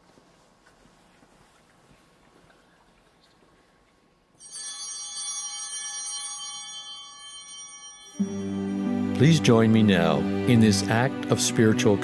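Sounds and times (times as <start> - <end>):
bell ringing: 4.4 - 11.3.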